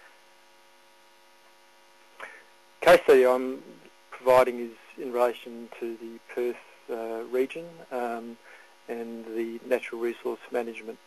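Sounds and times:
faint electrical hum: 0.0 - 11.0
man speaking: 2.2 - 11.0.

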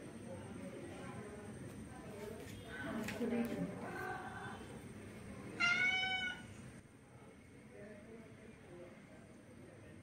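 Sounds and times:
cat meowing: 5.6 - 6.5.

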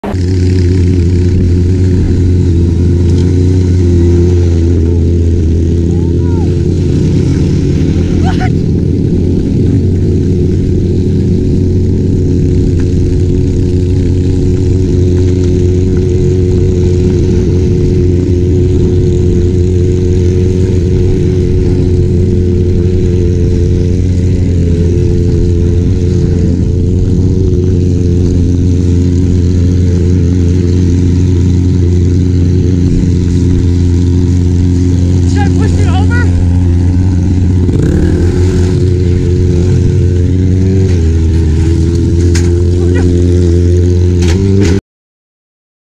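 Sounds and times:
motorcycle engine running: 0.0 - 44.8.

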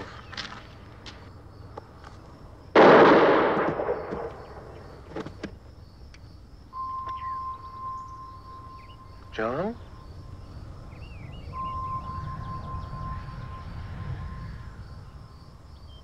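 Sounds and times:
revolver gunshot echoing: 2.8 - 4.8
steady high tone: 6.7 - 15.4.

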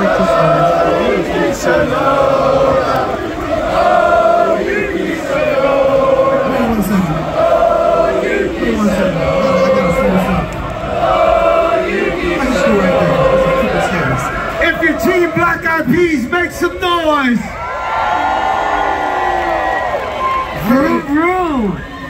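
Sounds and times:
crowd chanting: 0.0 - 16.0.

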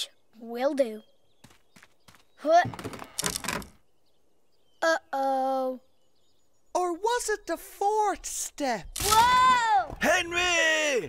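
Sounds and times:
loud creaking thunk: 2.6 - 3.8.

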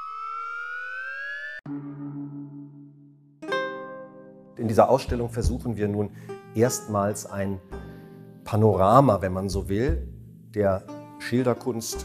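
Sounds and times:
low held synth note: 0.0 - 3.4
synth tone gliding upward: 0.0 - 3.4.

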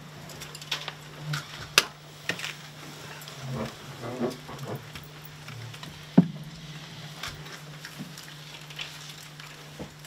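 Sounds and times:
steady low hum: 1.0 - 10.0.

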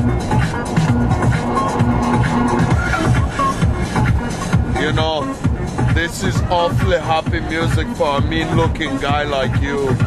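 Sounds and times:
electronic dance music on stereo: 0.0 - 10.0.

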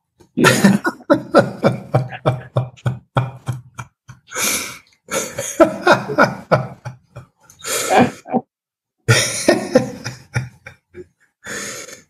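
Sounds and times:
man coughing: 0.4 - 1.0.

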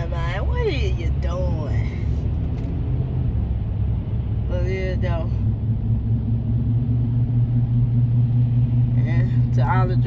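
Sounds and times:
road and engine rumble: 0.0 - 10.0.

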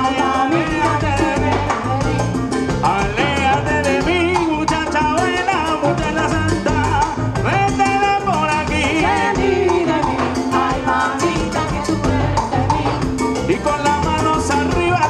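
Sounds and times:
congas: 0.0 - 15.0
drum kit: 0.0 - 15.0
electric bass: 0.0 - 15.0
sung vocals: 0.0 - 15.0.

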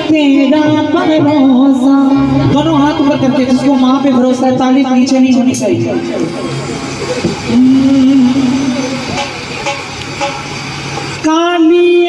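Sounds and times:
low steady tone: 2.0 - 5.1.

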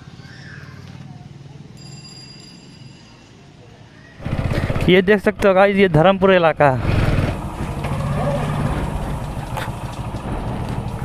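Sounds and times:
motorcycle engine running: 4.2 - 11.0.

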